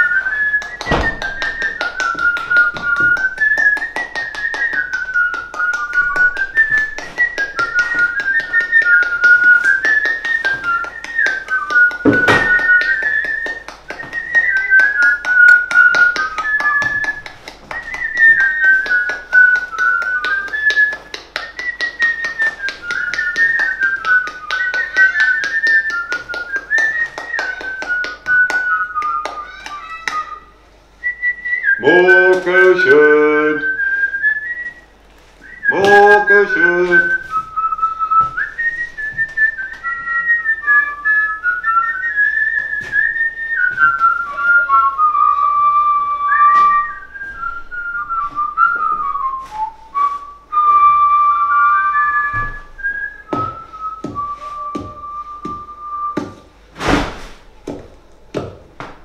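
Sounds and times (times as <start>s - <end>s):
person whistling a tune: 0.0s - 56.4s
sharp knock: 12.0s - 12.7s, 56.2s - 57.4s.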